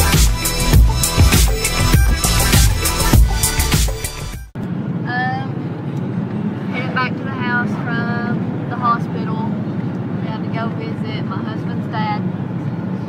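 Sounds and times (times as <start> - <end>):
car engine rumble: 0.0 - 13.0
road noise: 0.0 - 13.0
people talking: 5.1 - 5.6, 6.6 - 9.6, 10.2 - 12.3.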